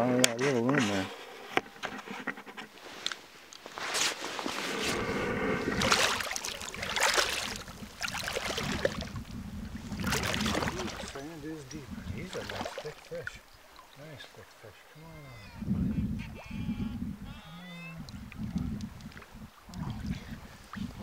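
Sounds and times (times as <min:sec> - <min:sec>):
water sloshing around waders: 0:04.0 - 0:15.4.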